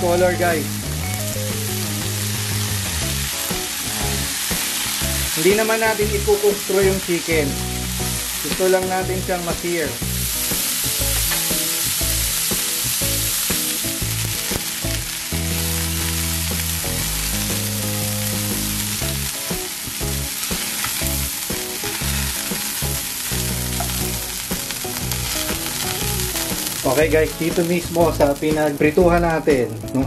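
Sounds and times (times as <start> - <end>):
chicken sizzling in hot oil: 0.0 - 30.0.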